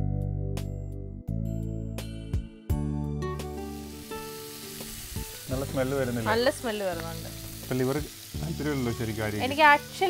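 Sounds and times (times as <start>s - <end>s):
liver sizzling in a pan: 3.3s - 10.0s.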